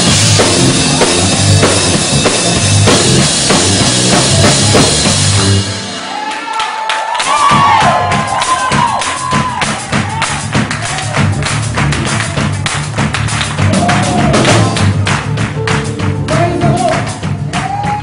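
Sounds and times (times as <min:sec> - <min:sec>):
gospel band playing: 0:00.0 - 0:18.0
rapid percussive strikes: 0:00.0 - 0:18.0.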